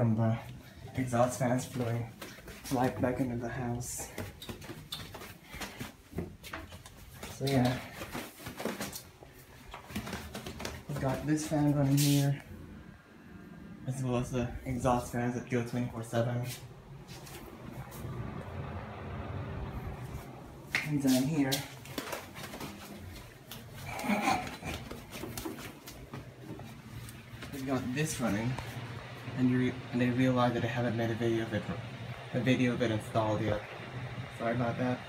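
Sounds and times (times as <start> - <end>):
exhaust fan whirring: 0.0 - 35.0
bare footsteps on tiled stairs: 1.2 - 12.2, 20.2 - 29.2.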